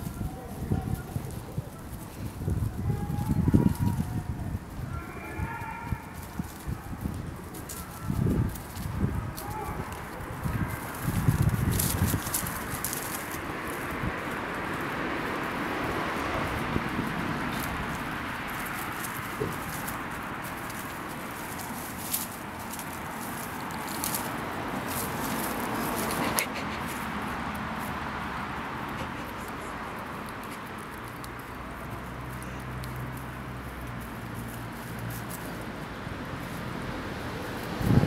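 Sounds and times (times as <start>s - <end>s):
outdoor background noise: 0.0s - 38.0s
rustling in dry leaves: 0.0s - 38.0s
squirrel gnawing: 4.9s - 37.8s.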